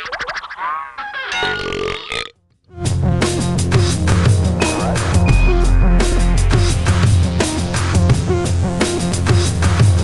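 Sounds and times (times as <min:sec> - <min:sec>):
cartoon burp: 0:01.5 - 0:02.4
music with heavy drum beat: 0:02.9 - 0:10.0.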